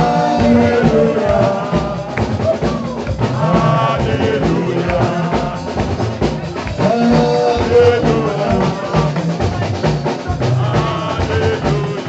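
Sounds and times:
drum kit steady beat: 0.0 - 12.0
loud live band music: 0.0 - 12.0.

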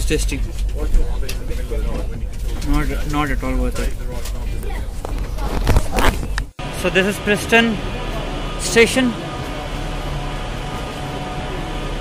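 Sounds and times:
train carriage rumble: 0.0 - 12.0.

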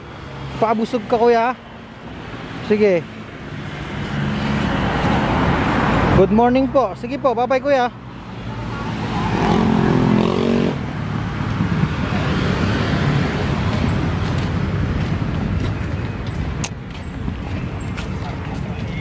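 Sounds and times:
cars passing on busy road: 0.0 - 19.0
vehicle engine: 0.0 - 19.0.

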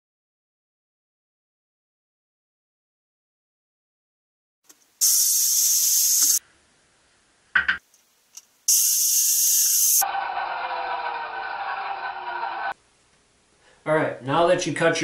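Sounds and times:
power saw cutting board: 9.5 - 12.8.

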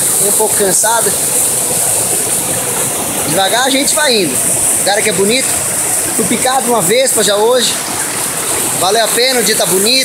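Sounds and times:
stream rushing over boulders: 0.0 - 10.0.

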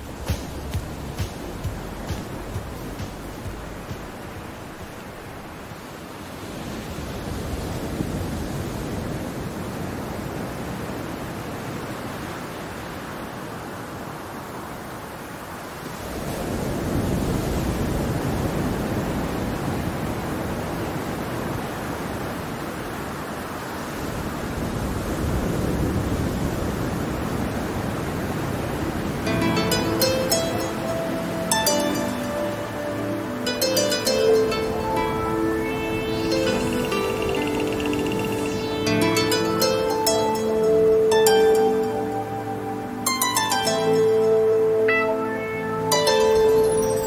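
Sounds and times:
ocean waves breaking: 0.0 - 47.0.

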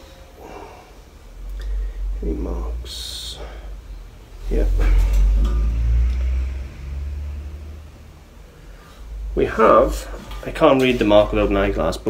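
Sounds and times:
metal tray rumbling: 4.3 - 7.6.

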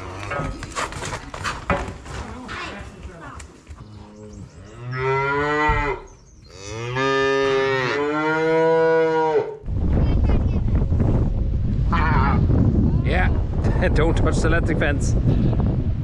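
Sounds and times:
calves mooing: 3.9 - 9.6
wind rumbling on microphone: 9.6 - 16.0.

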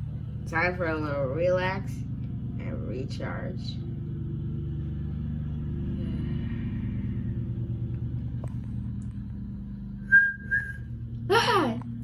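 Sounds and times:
low mechanical hum: 0.0 - 12.0
short high whistle tones: 10.1 - 10.9.

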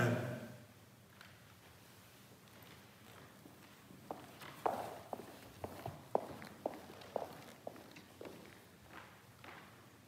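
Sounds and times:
footsteps on hard floor: 2.5 - 9.8.

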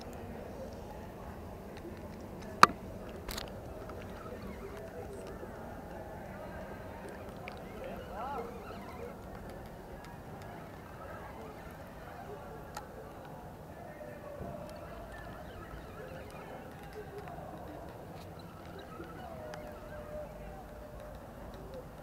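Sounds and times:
faint indistinct voices: 0.0 - 22.0.

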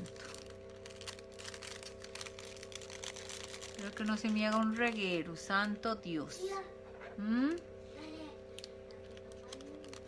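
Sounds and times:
plastic bag crinkling: 0.0 - 6.4, 7.4 - 10.0
steady background hum: 0.0 - 10.0.

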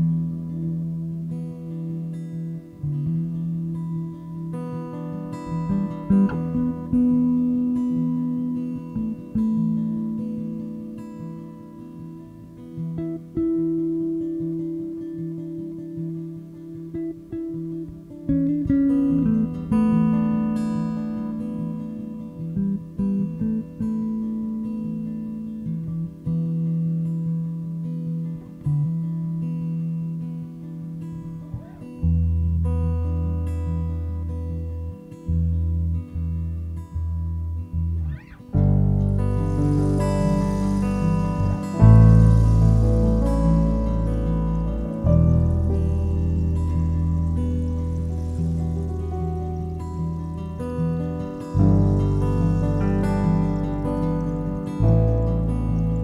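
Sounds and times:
acoustic guitar picking: 0.0 - 56.0
deep bass note: 38.6 - 56.0.

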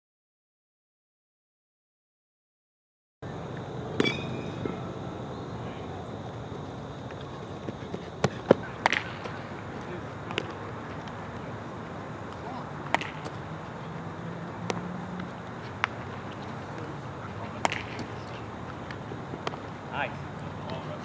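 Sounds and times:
outdoor background hum: 3.2 - 21.0
balls caught in leather glove: 4.0 - 4.8, 7.7 - 11.4, 12.3 - 13.4, 14.6 - 16.4, 17.5 - 18.2, 18.9 - 19.7
metal bat hitting ball: 4.0 - 4.8.

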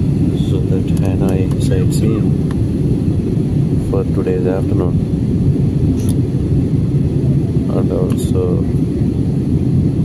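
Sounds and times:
jet cabin rumble in flight: 0.0 - 10.0.

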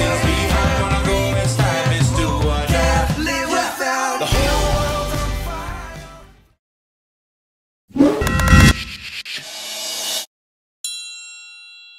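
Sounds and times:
bright metallic ding: 10.9 - 11.9.

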